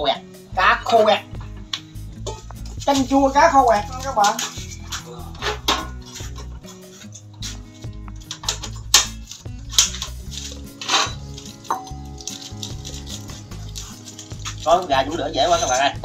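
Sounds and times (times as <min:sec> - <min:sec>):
background music with bass line: 0:00.0 - 0:16.0.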